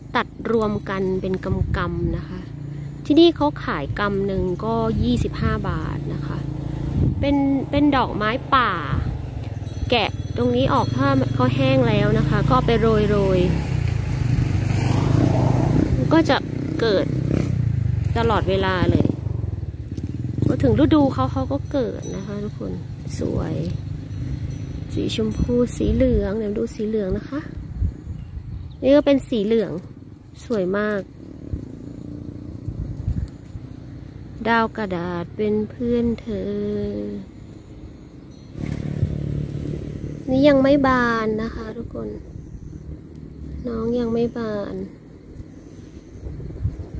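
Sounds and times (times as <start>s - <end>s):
engine humming: 0.0s - 46.9s
woman speaking: 0.2s - 2.5s, 3.1s - 6.5s, 7.2s - 9.1s, 9.8s - 13.6s, 15.9s - 17.1s, 18.1s - 19.2s, 20.4s - 23.8s, 25.0s - 27.6s, 28.8s - 31.1s, 34.4s - 37.3s, 40.3s - 42.2s, 43.6s - 44.9s.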